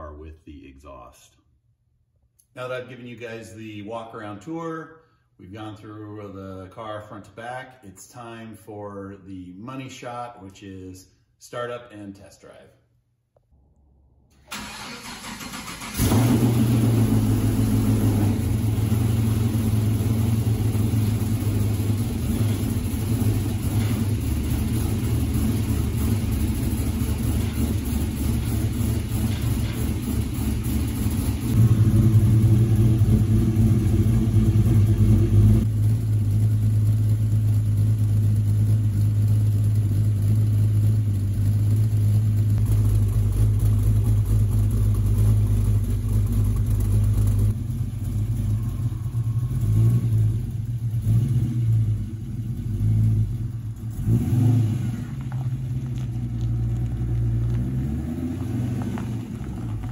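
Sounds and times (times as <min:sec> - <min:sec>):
car engine deep exhaust note: 0:16.0 - 0:59.9.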